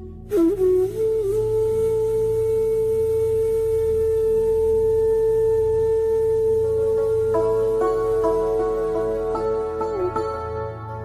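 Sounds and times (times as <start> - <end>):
bamboo flute long note: 0.0 - 10.6.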